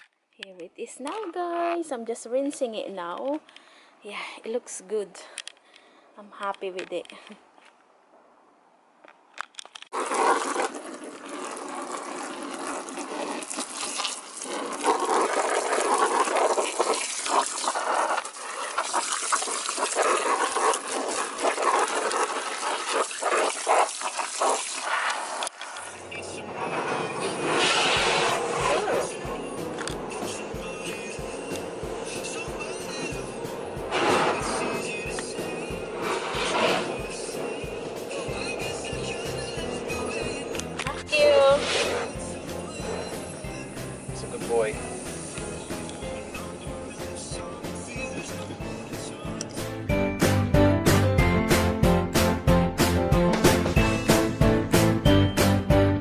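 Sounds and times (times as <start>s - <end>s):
water spraying and splashing: 9.9s - 26.0s, 26.7s - 38.9s
background music with steady beat: 28.6s - 41.1s, 42.0s - 56.0s.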